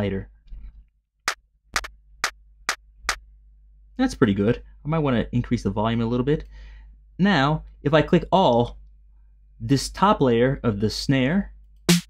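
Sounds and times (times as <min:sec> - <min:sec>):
electronic hand-clap: 0:01.3 - 0:02.4.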